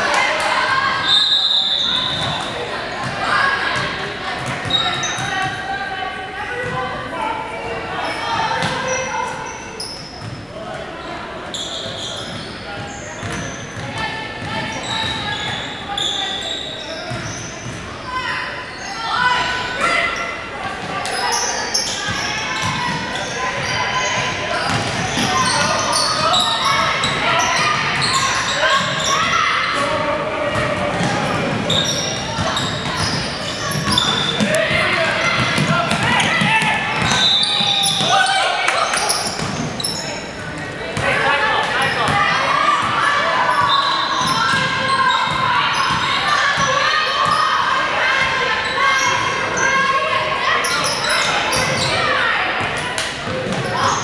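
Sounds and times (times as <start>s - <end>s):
voices in gym: 0.0s - 54.0s
shoe squeaks: 0.8s - 2.5s, 4.5s - 5.5s, 8.0s - 10.4s, 11.5s - 20.4s, 21.0s - 29.9s, 31.7s - 36.4s, 37.0s - 38.2s, 38.9s - 40.4s, 43.3s - 52.2s
ball bouncing on hardwood court: 8.6s - 8.8s, 24.7s - 25.3s, 32.2s - 38.2s.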